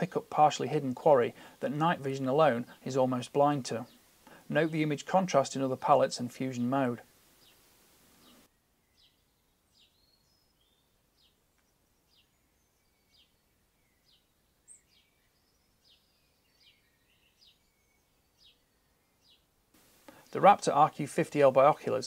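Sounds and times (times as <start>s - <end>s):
bird chirping: 0.0s - 22.0s.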